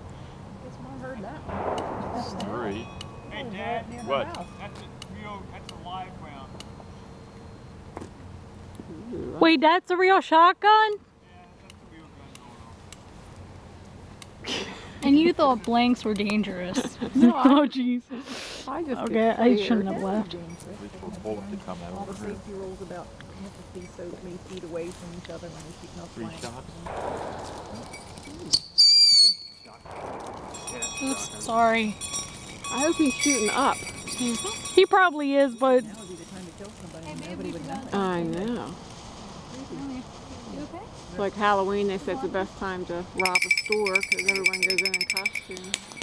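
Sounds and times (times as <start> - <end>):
low steady hum: 0.0 - 18.2
firework pop: 1.5 - 3.1, 26.9 - 31.2
firework spraying sparks hissing: 26.4 - 32.7
shrill firework whistle: 27.8 - 31.4.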